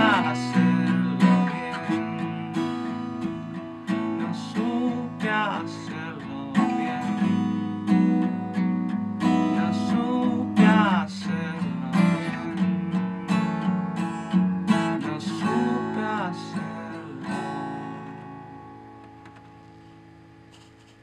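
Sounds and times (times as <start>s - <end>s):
acoustic guitar strumming chords: 0.0s - 21.0s.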